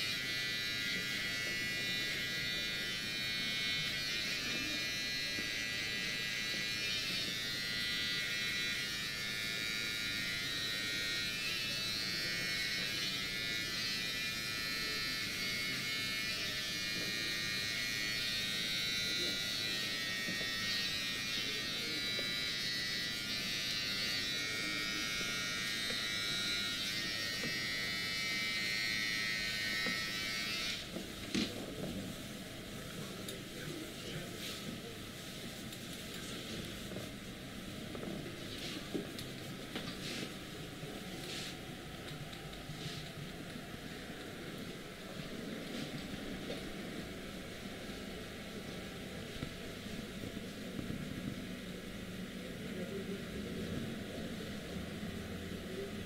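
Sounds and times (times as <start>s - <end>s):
steady electric buzz: 0.0s - 56.0s.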